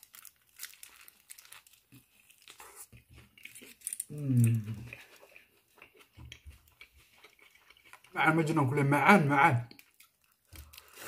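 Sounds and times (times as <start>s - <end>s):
foil wrapper crinkling: 0.0s - 5.7s, 9.7s - 11.0s
biting and chewing: 0.0s - 8.2s.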